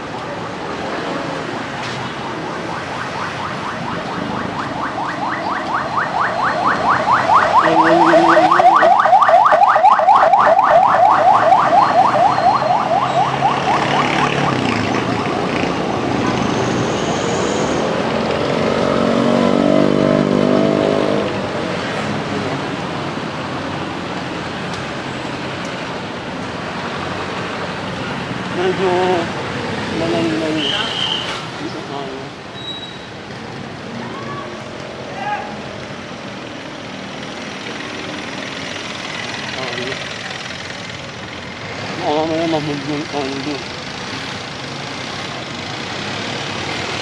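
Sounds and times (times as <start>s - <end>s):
street traffic: 0.0s - 47.0s
vehicle engine passing: 10.9s - 22.8s.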